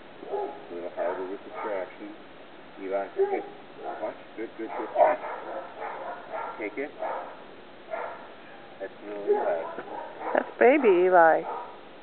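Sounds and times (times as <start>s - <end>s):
puppy yipping: 4.7s - 11.8s.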